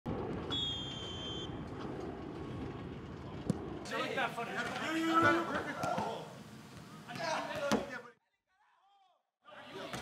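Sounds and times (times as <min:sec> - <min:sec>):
low outdoor rumble: 0:00.1 - 0:05.0
whistle blown: 0:00.5 - 0:01.6.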